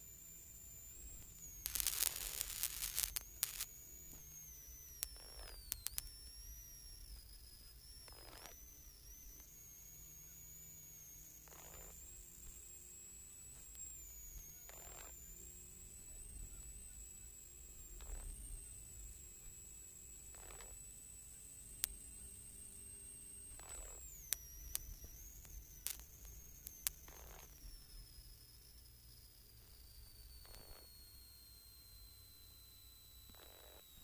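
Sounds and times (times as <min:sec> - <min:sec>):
crackling bursts: 0:00.0 - 0:22.1, 0:23.3 - 0:30.9
radio static hiss: 0:00.0 - 0:22.6, 0:23.4 - 0:27.8
high electronic whine: 0:00.0 - 0:34.0.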